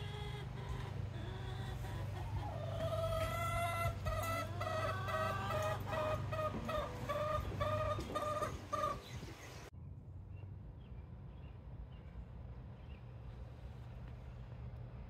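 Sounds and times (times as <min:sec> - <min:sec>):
hen clucking: 0:00.0 - 0:09.7.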